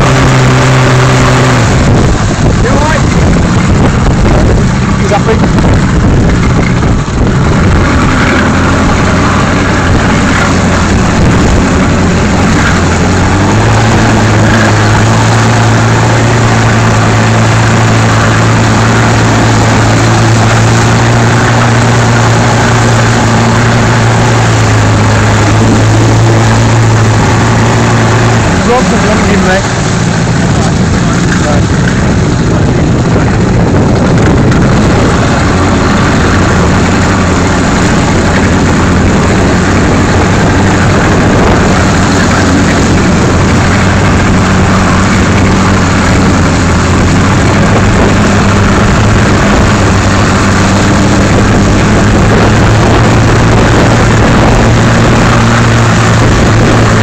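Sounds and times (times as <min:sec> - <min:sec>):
motorboat engine running: 0:00.0 - 0:57.0
wind rush on microphone: 0:00.0 - 0:57.0
water spray: 0:06.8 - 0:57.0.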